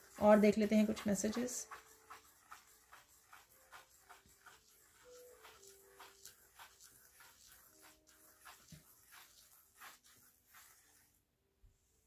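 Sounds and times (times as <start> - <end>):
stick sweeping through sand: 0.0 - 11.2.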